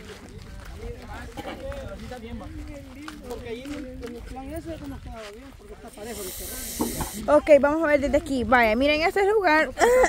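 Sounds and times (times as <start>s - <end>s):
faint voices talking: 0.0s - 10.0s
short high hiss: 6.0s - 7.3s.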